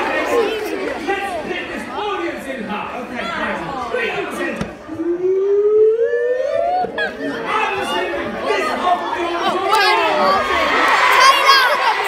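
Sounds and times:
audience chattering and calling out: 0.0s - 12.0s.

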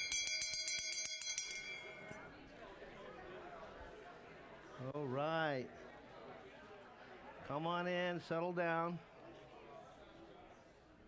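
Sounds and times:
murmur of voices: 1.5s - 11.0s.

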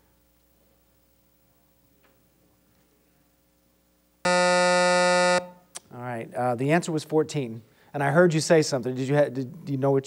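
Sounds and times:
quiz show buzzer: 4.2s - 5.6s.

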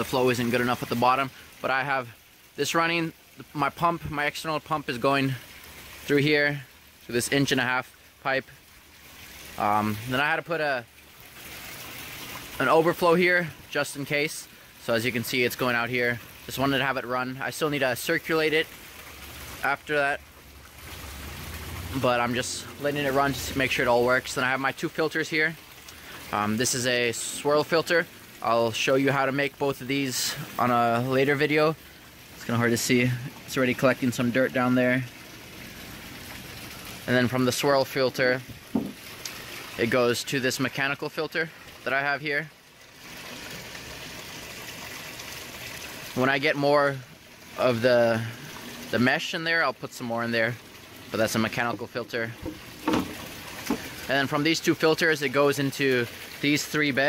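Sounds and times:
water running and splashing: 0.0s - 57.0s.

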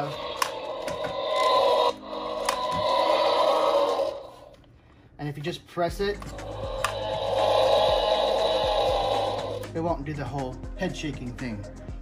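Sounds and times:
toy dinosaur electronic roar: 0.0s - 4.5s, 6.3s - 9.6s.

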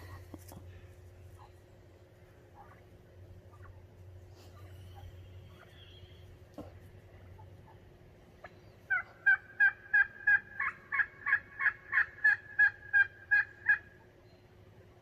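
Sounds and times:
turkey calling: 0.0s - 14.5s.

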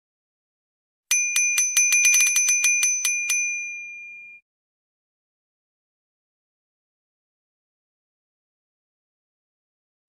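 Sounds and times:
bicycle bell trill: 1.1s - 4.4s.

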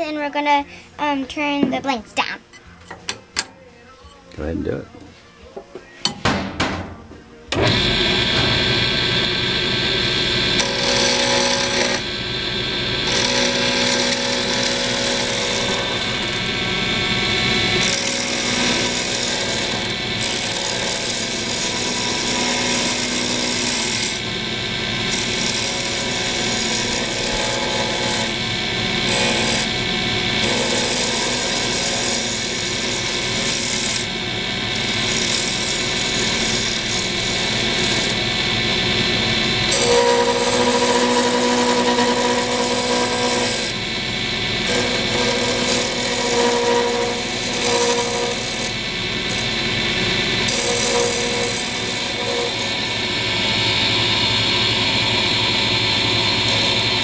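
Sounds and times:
wood lathe motor hum: 7.5s - 57.0s
turning tool scraping wood: 10.6s - 12.1s, 13.0s - 16.4s, 17.8s - 24.2s, 39.7s - 43.8s, 44.6s - 49.5s, 50.4s - 53.1s.

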